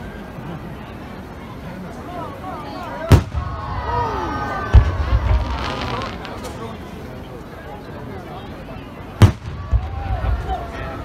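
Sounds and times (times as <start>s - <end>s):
firework bang: 3.1s - 4.0s, 4.6s - 6.6s, 9.2s - 10.6s.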